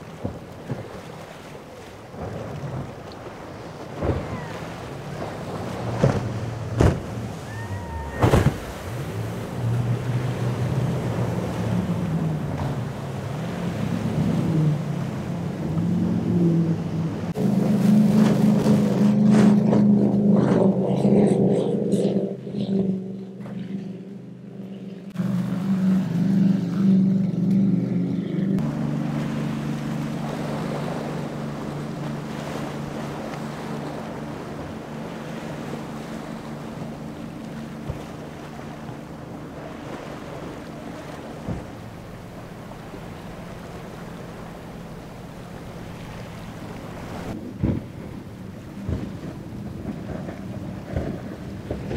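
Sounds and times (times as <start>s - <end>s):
powerboat engines droning: 0.0s - 51.9s.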